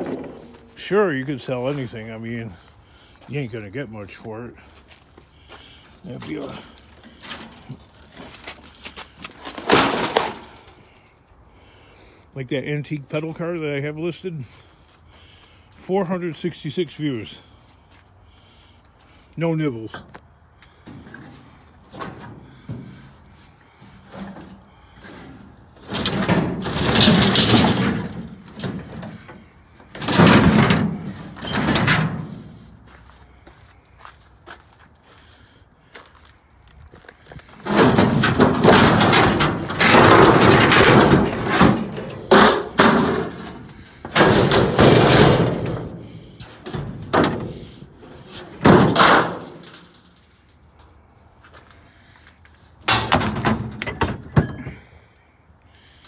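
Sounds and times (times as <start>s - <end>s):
sheet metal rattling and banging: 25.0s - 32.6s, 37.6s - 50.3s, 52.9s - 54.8s.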